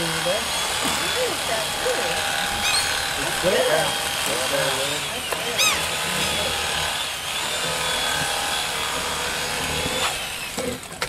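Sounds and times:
small electric motor running: 0.0s - 11.0s.

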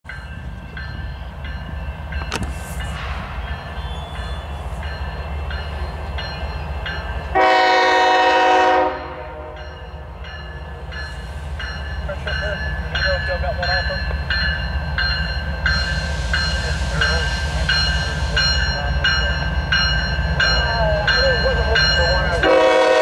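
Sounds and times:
train rumble: 0.0s - 23.0s
locomotive air horn: 7.4s - 9.6s, 22.4s - 23.0s.

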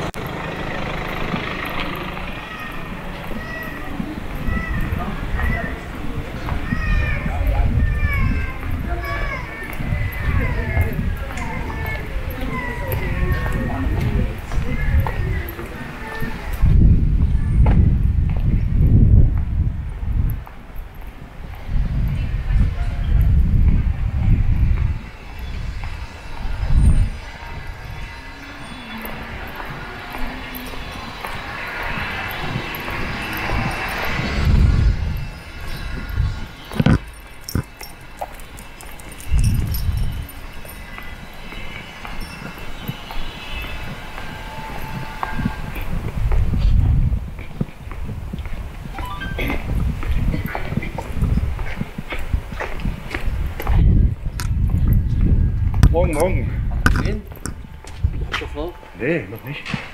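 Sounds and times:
passing traffic: 0.0s - 59.9s.

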